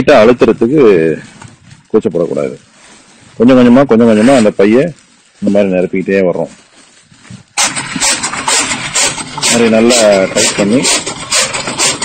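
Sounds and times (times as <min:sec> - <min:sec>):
plastic sack and fodder rustling: 0:00.0 - 0:12.0.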